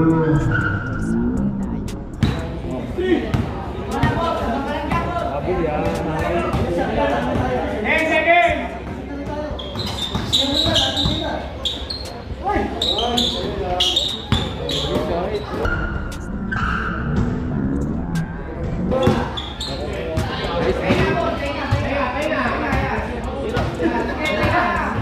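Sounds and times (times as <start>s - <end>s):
people chattering: 0.0s - 25.0s.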